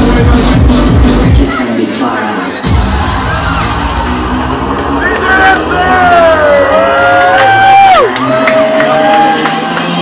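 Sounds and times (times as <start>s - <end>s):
electronic dance music: 0.0s - 10.0s
crowd shouting and whooping: 2.6s - 10.0s.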